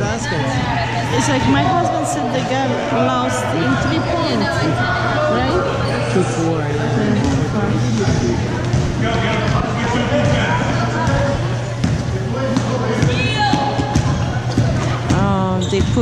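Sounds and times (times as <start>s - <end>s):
spectators chatter: 0.0s - 16.0s.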